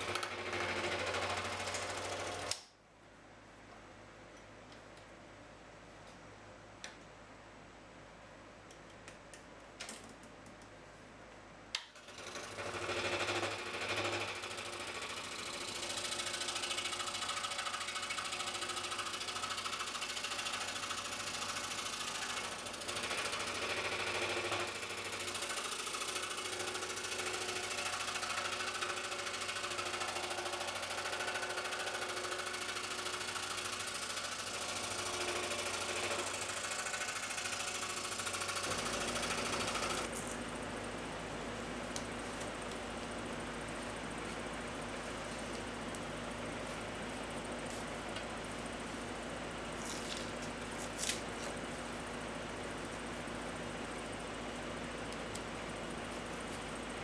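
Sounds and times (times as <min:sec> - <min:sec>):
scroll saw cutting wood: 0:12.0 - 0:40.4.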